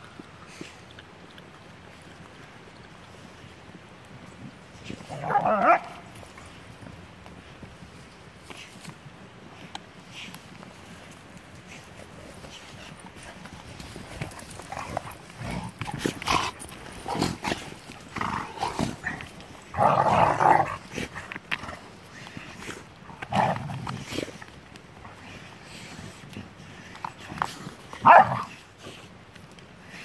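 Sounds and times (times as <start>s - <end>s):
dogs scuffling: 1.4s - 30.0s.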